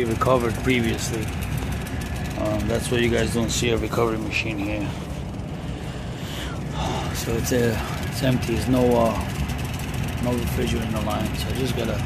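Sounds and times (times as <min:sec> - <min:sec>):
hvac equipment hum: 0:00.0 - 0:12.0.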